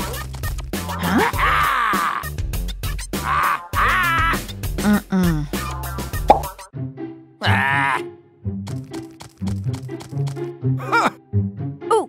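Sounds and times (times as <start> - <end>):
cartoon music with bass line: 0.0 - 12.0.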